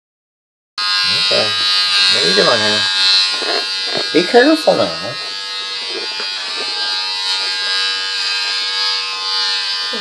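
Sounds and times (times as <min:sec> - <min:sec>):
electric hair clippers buzzing: 0:00.8 - 0:10.0.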